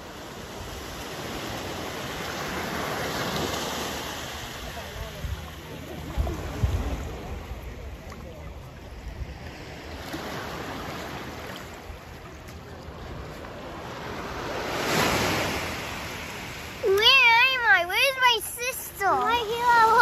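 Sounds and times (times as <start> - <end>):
surf washing over sand: 0.0 - 20.0
girl wailing: 16.9 - 20.0.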